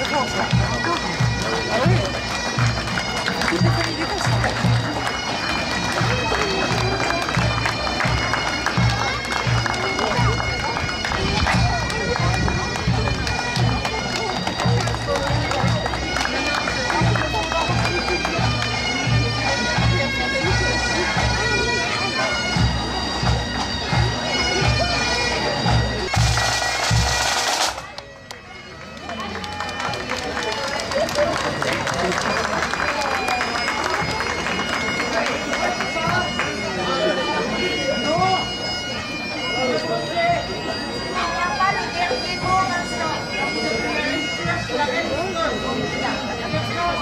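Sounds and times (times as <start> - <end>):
bagpipes playing: 0.0 - 47.0
crowd chatter: 0.0 - 47.0
drum beating: 22.6 - 28.0.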